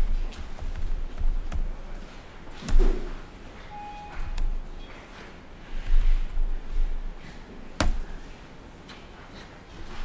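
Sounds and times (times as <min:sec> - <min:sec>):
laptop keyboard typing: 0:00.0 - 0:08.3.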